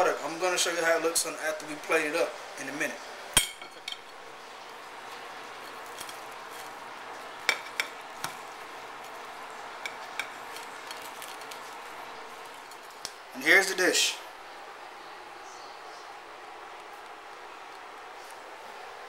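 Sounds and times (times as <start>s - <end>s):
knife cutting crisp food: 5.7s - 6.8s.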